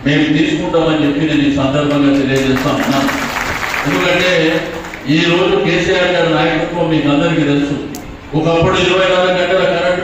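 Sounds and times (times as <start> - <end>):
crowd noise: 0.0 - 10.0
man chanting over loudspeaker: 0.0 - 10.0.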